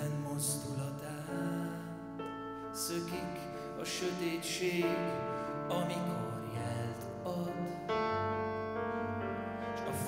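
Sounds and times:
person singing: 0.0s - 10.0s
slow piano chords: 0.0s - 10.0s.

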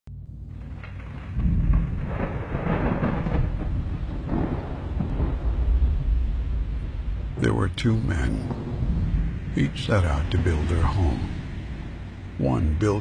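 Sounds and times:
rolling thunder rumble: 0.1s - 13.0s
steady rain hiss: 0.2s - 13.0s.

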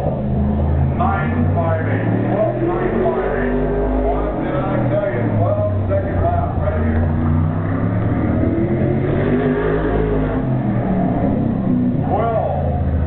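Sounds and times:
race car engine running hard: 0.0s - 13.0s.

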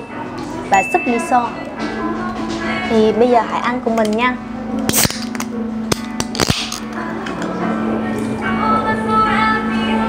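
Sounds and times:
can opening pop: 4.8s - 7.5s.

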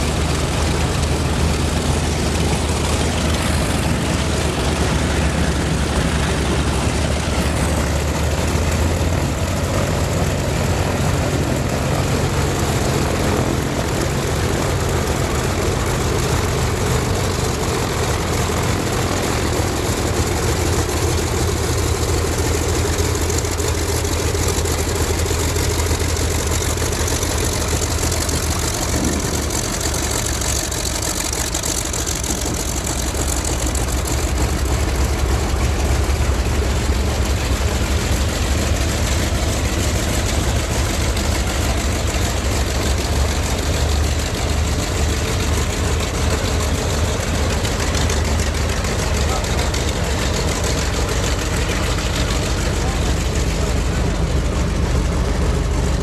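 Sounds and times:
radial engine rumbling: 0.0s - 56.0s.

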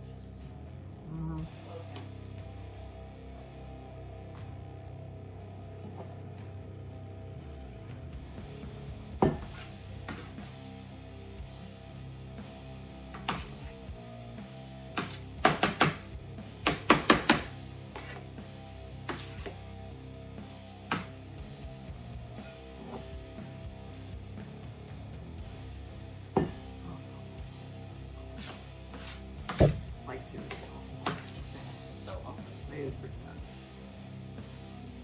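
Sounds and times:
guitar background music: 0.0s - 35.0s.

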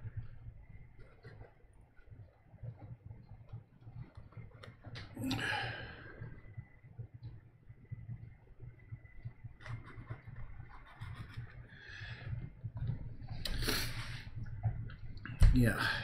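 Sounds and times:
low room hum: 0.0s - 16.0s
breathy exhale: 5.2s - 6.2s.

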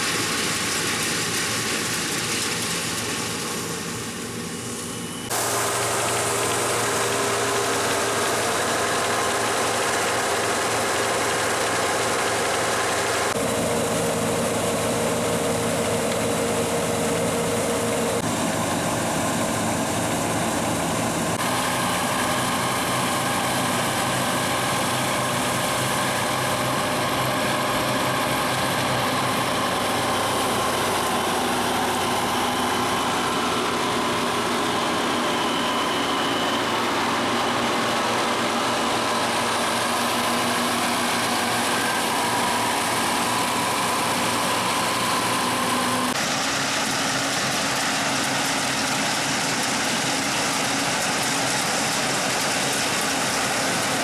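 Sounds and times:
combine harvester running: 0.0s - 54.0s.

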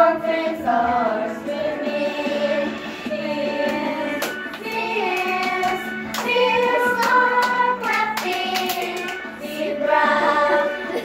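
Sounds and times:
children singing together: 0.0s - 11.0s
children clapping hands: 3.6s - 9.5s.

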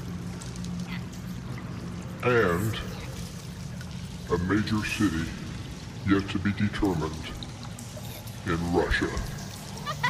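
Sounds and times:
low electrical hum: 0.0s - 10.0s
steady hiss: 2.2s - 9.8s.

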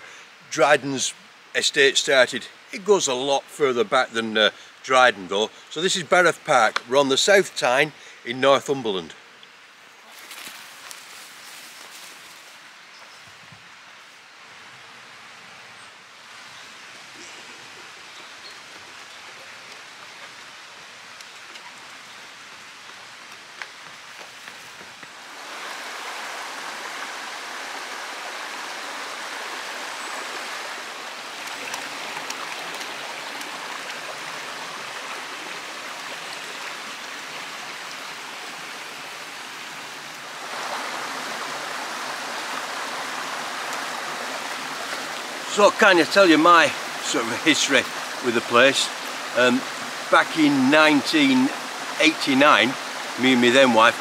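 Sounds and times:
stream running over rocks: 0.0s - 54.0s.

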